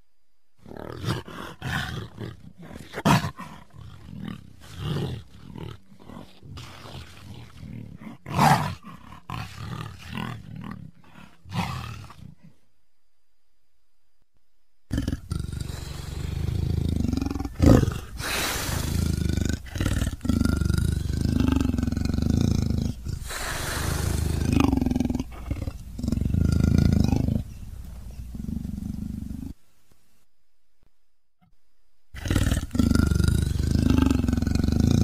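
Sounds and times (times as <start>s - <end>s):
big cat roars and growls: 0.6s - 12.6s, 14.9s - 29.6s, 32.2s - 35.0s.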